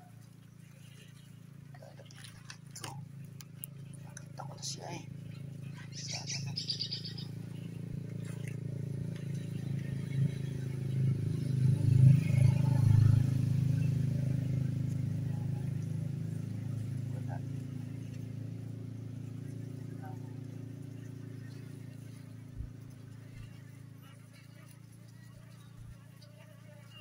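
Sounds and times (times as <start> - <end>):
bee swarm humming: 0.0 - 27.0
bird chirps: 5.8 - 7.8.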